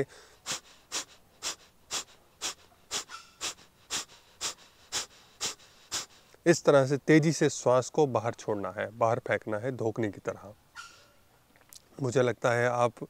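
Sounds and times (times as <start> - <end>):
man exhaling forcefully through nose: 0.0 - 6.3.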